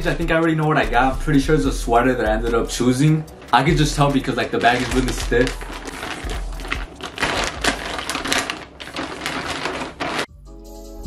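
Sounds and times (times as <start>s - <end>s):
plastic mailer bag crinkling: 2.8s - 10.3s.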